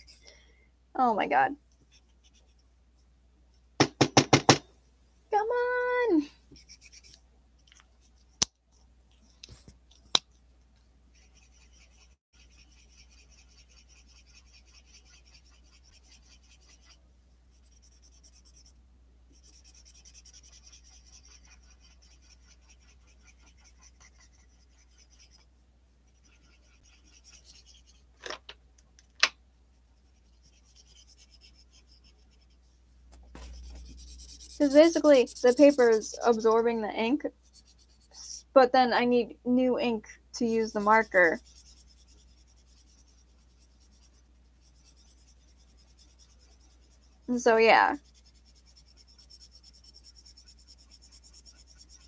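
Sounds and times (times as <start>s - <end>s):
marker scratching on paper: 6.6s - 7.2s, 11.1s - 25.5s, 26.1s - 28.0s, 30.0s - 38.5s, 40.4s - 52.0s.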